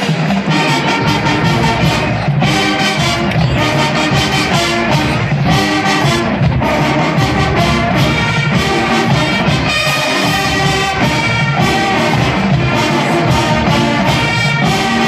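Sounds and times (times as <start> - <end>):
marching band playing: 0.0 - 15.0.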